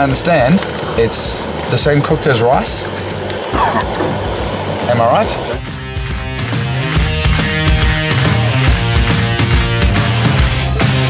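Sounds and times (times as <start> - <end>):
low hum: 2.8 - 5.7
man speaking: 4.8 - 5.6.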